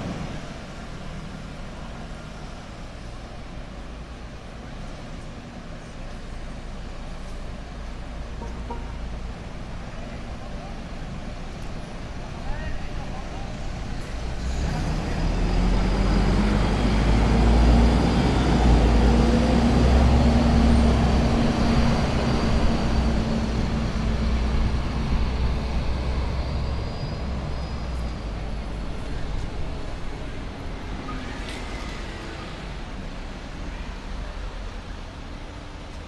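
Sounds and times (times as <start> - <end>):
bus engine passing: 0.0 - 36.0
street traffic: 0.0 - 36.0.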